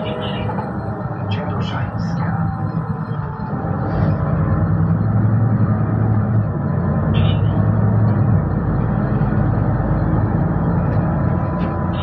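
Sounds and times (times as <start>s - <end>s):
bus engine droning: 0.0s - 12.0s.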